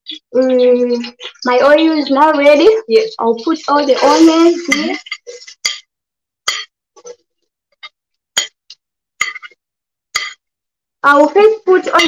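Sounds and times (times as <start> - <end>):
metal spoon clinking on a plate: 4.7 - 5.9, 6.5 - 6.7, 9.2 - 9.6, 10.2 - 10.4.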